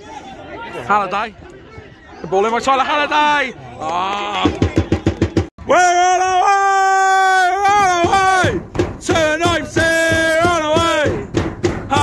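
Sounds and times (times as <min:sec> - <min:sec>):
drum beats: 0:04.4 - 0:05.5, 0:07.5 - 0:12.0.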